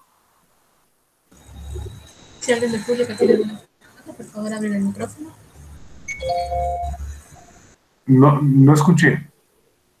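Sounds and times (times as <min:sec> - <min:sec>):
electronic chime: 0:06.1 - 0:07.0.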